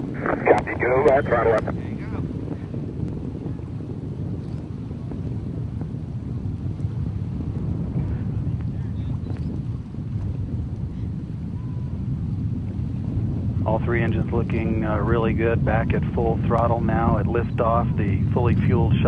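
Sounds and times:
distant rocket motor rumble: 0.0s - 19.0s.

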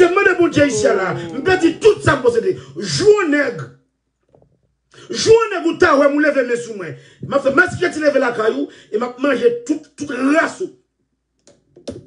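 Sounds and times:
man speaking: 0.0s - 3.7s, 5.1s - 10.7s.

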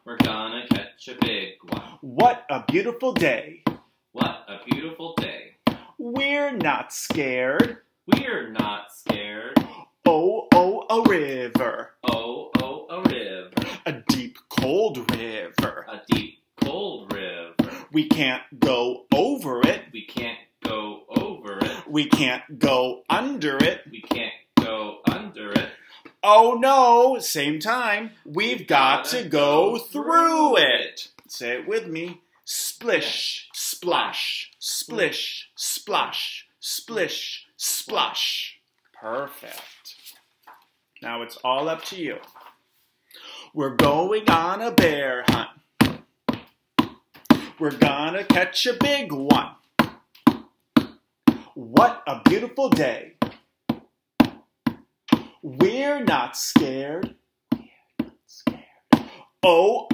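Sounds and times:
man reading in sing-song voice: 0.0s - 40.3s, 41.0s - 42.6s, 43.2s - 45.7s, 47.2s - 49.8s, 51.3s - 53.4s, 55.2s - 57.6s, 58.3s - 59.9s.

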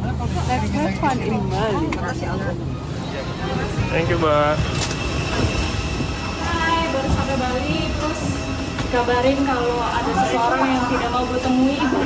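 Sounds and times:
aircraft low rumble: 0.0s - 12.0s
airport ground noise: 0.0s - 12.0s
voices talking: 0.0s - 12.0s.

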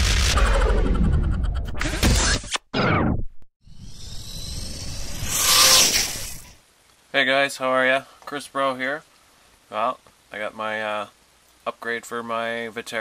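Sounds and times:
falling swoosh: 3.6s - 6.6s.

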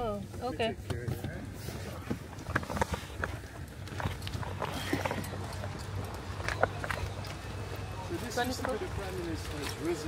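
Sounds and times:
people climbing out of van: 0.0s - 10.0s.

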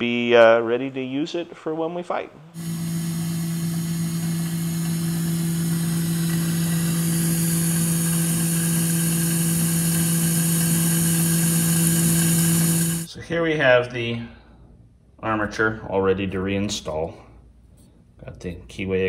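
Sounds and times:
milling machine cutting steel: 2.6s - 13.1s.

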